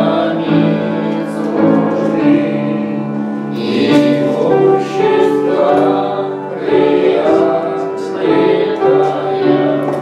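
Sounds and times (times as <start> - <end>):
voices singing slowly together: 0.0 - 10.0.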